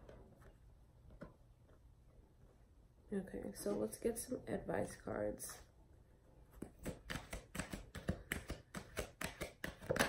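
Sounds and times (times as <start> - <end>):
cards being shuffled: 6.6 - 10.0.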